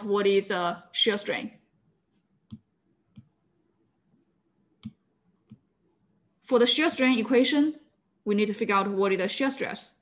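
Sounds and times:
stylus tapping on glass screen: 2.4 - 3.4.

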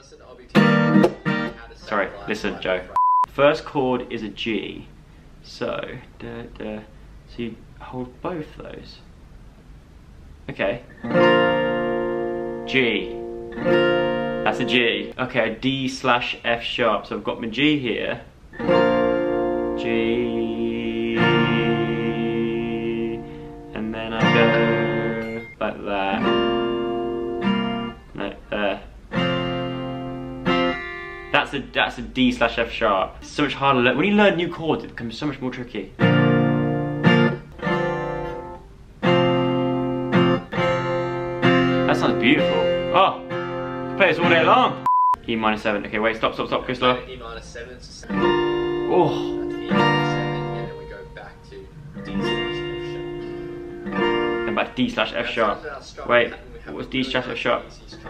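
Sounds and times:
acoustic guitar strums: 0.5 - 1.8, 10.9 - 14.9, 21.0 - 28.2, 29.0 - 31.4, 36.0 - 44.9, 48.0 - 55.2.

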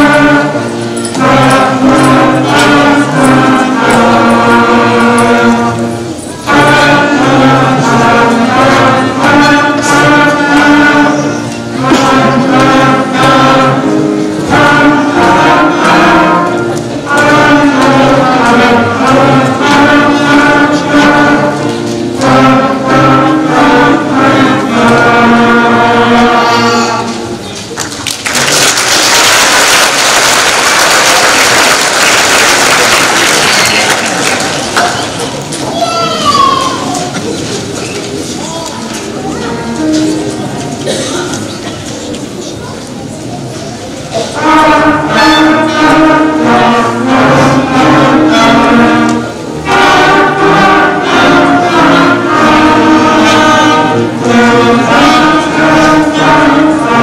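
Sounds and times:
school wind band playing: 0.0 - 27.4, 28.3 - 35.2, 39.4 - 42.0, 43.3 - 57.0
audience applause: 27.8 - 35.2.

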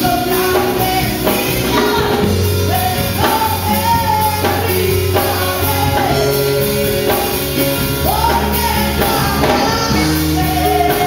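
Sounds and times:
instrumental accompaniment: 0.0 - 11.0
woman singing into a microphone: 0.0 - 11.0.

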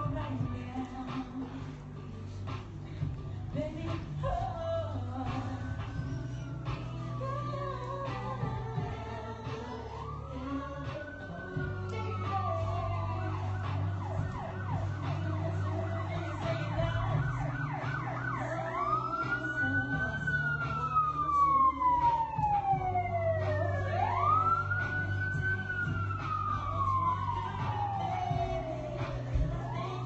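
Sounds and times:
electronic siren yelp and wail: 6.0 - 30.0.

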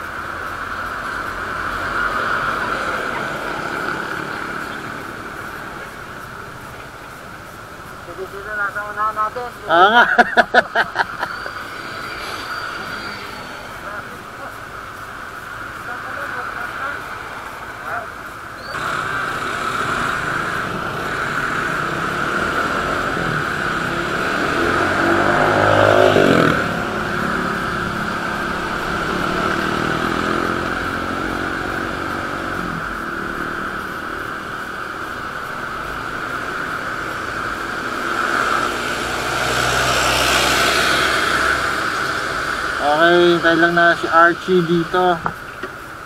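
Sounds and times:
traffic: 0.0 - 46.0
motorcycle engine: 10.0 - 46.0.

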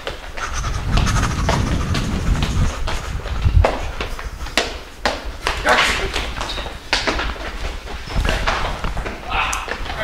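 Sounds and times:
footsteps on hard floor: 0.0 - 10.0.

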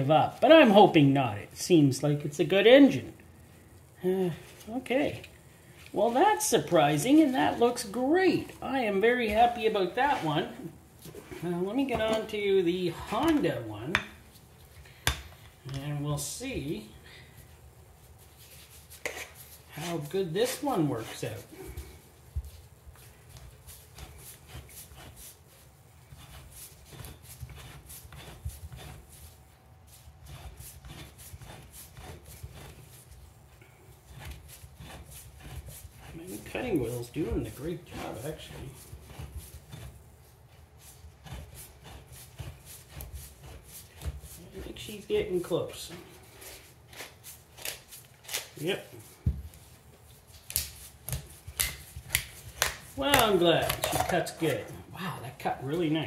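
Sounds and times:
cutter scoring metal can: 34.1 - 39.9.

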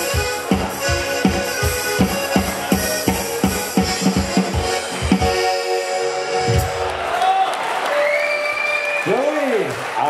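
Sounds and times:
accordion music: 0.0 - 7.2
audience applauding: 6.7 - 10.0
long high whistle: 7.9 - 9.1.

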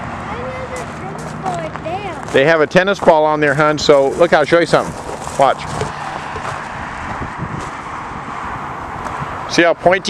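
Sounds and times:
road traffic hiss: 0.0 - 10.0.

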